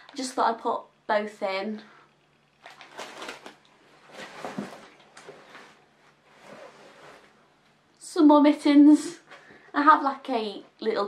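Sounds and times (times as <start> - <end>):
plastic pack put down: 2.6 - 3.6
rummaging in a bag: 2.6 - 5.8.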